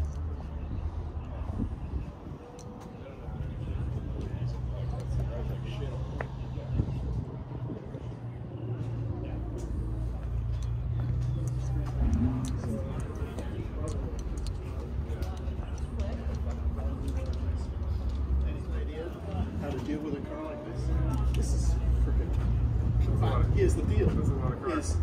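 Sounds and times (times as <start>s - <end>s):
steady low hum: 0.0s - 20.9s
people talking: 0.0s - 25.0s.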